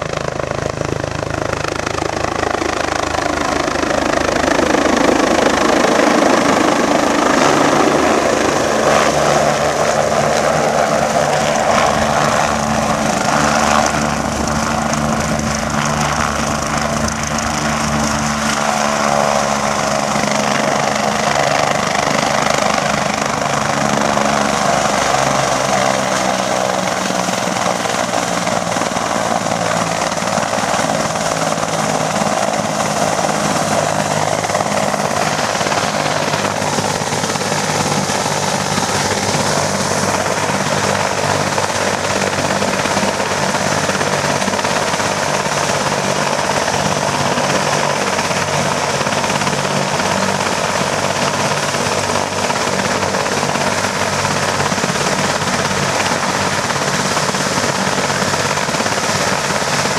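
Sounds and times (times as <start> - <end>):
helicopter turbine whine and rotors: 0.0 - 59.9.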